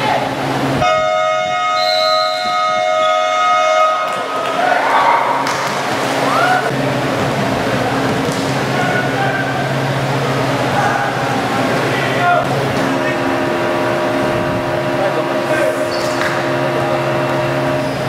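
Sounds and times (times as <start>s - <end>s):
electronic game horn blast: 0.8s - 4.2s, 12.8s - 18.0s
people calling out: 8.7s - 9.9s, 10.6s - 13.5s.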